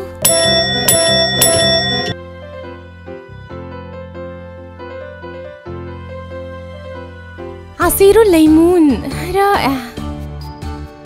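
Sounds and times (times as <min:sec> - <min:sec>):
desk service bell ringing: 0:00.0 - 0:02.2.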